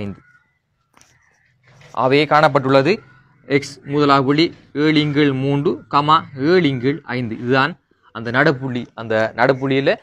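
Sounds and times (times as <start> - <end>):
man talking: 1.9 - 10.0.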